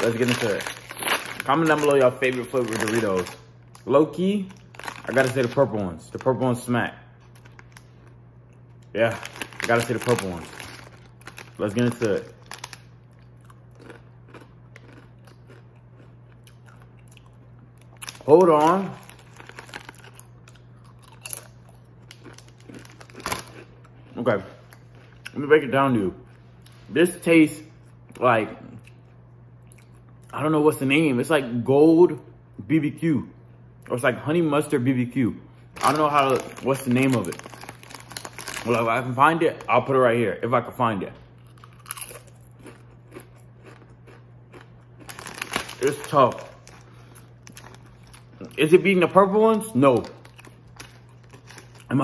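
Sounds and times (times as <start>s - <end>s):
tortilla chips being chewed: 0.0s - 6.3s, 7.2s - 25.4s, 35.8s - 39.8s, 41.4s - 48.9s, 49.8s - 52.0s
foil chip bag crinkling: 0.0s - 8.2s, 8.9s - 14.0s, 17.9s - 24.3s, 35.8s - 40.0s, 44.5s - 52.0s
steady low hum: 0.0s - 52.0s.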